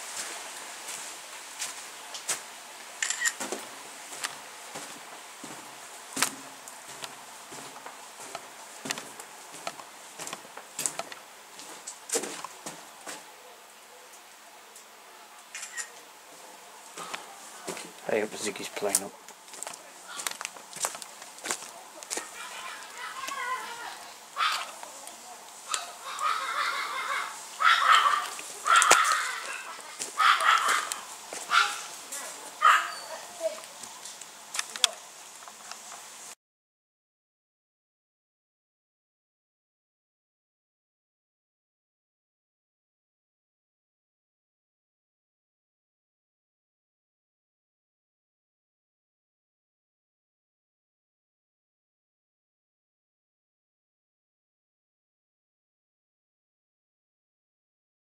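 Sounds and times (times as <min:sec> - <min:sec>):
footsteps on gravel: 0:00.0 - 0:02.6, 0:03.3 - 0:13.3, 0:16.9 - 0:26.5, 0:27.3 - 0:35.6
dog barking: 0:24.4 - 0:24.7, 0:25.7 - 0:31.9, 0:32.6 - 0:33.3.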